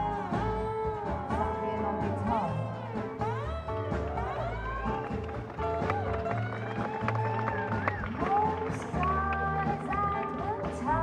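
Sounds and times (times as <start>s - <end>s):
lap steel guitar gliding notes: 0.0s - 11.0s
strummed acoustic guitar: 0.0s - 11.0s
upright double bass: 0.0s - 11.0s.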